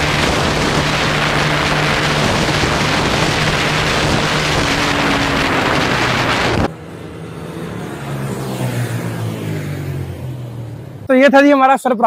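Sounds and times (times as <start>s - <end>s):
wind on microphone: 0.0s - 6.7s
motorcycle engine at speed: 0.0s - 11.1s
wavering motorcycle engine: 0.0s - 11.4s.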